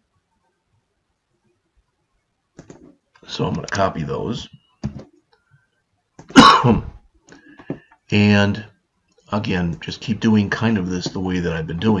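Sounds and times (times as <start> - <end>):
man coughing: 6.3 - 7.0.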